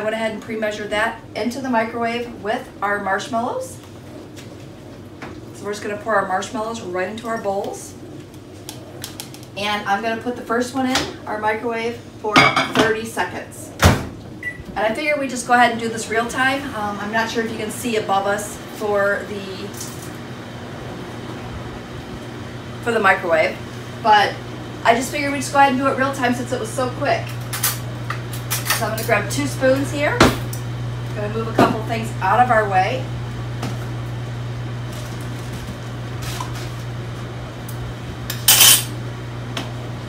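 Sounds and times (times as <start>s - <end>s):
microwave oven humming: 0.0s - 40.0s.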